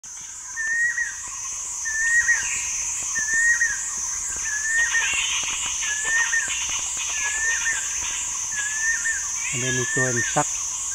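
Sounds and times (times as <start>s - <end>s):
high insect drone: 0.1s - 10.9s.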